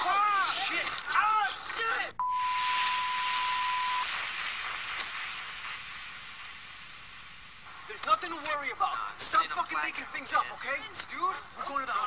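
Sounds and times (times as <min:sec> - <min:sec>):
steady high beep: 0:02.2 - 0:04.2
hiss: 0:02.6 - 0:08.4.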